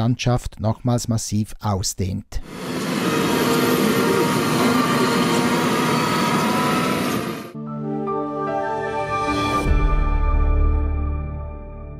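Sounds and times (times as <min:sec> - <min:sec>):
calm music: 0:07.5 - 0:11.9.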